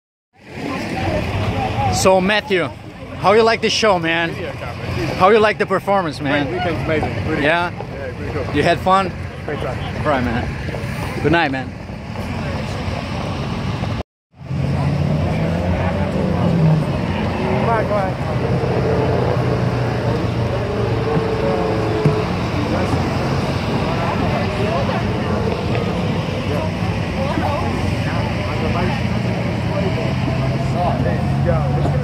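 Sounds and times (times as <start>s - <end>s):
outdoor street noise: 0.3s - 32.0s
faint voices: 0.4s - 32.0s
low traffic rumble: 0.4s - 32.0s.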